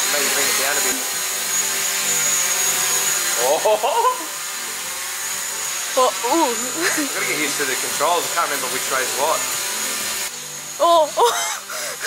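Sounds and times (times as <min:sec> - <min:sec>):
drone propellers whining: 0:05.2 - 0:12.0.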